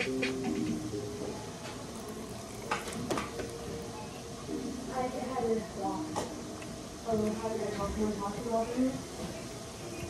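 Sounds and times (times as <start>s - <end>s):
chewing crispy fried chicken: 1.6s - 4.1s.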